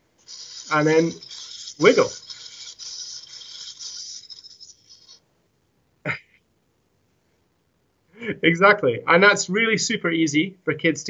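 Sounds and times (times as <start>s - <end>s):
small servo motors whirring: 0.2s - 5.2s.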